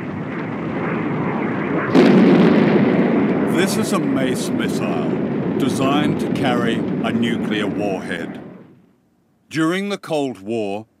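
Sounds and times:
jet engine rushing: 0:00.0 - 0:08.8.

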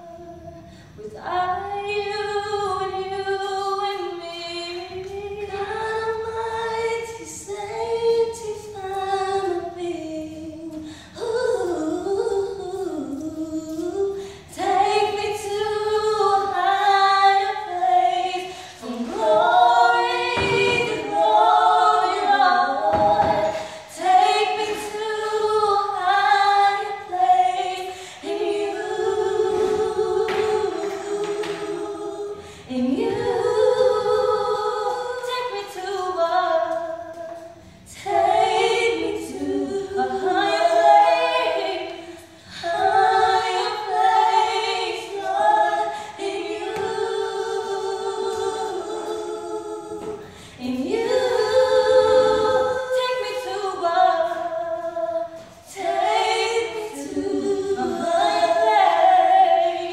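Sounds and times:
women singing a cappella: 0:00.0 - 0:59.9.

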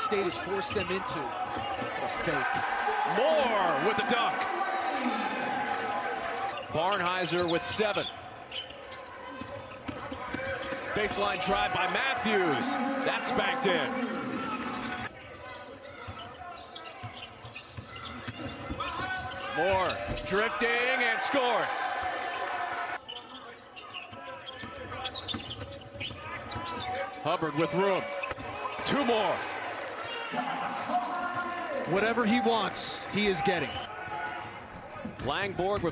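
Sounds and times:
faint crowd noise: 0:00.0 - 0:35.9.

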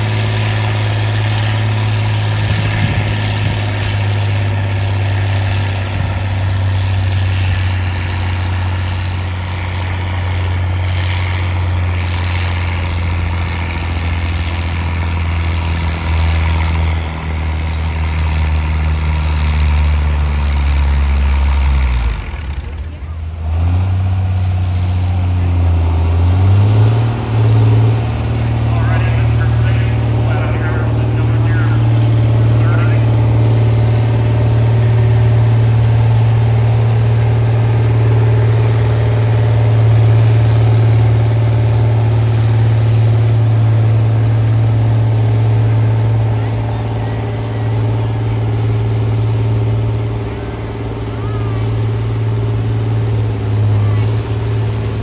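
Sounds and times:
diesel tractor engine under load: 0:00.0 - 0:55.0.

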